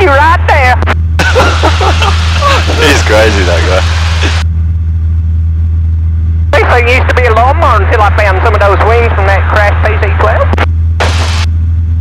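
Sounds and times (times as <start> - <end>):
aircraft engine and propeller drone: 0.0 - 12.0
voice over hissy radio: 1.3 - 4.4.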